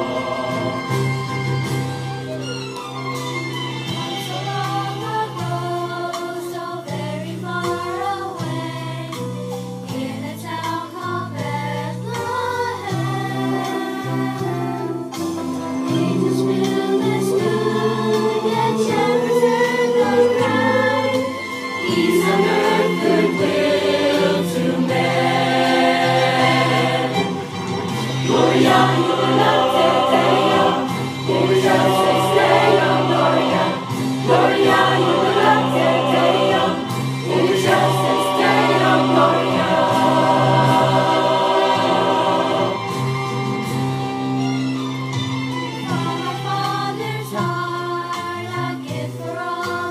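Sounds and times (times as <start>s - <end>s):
choir singing in harmony: 0.0s - 2.6s, 3.6s - 44.0s, 45.9s - 49.9s.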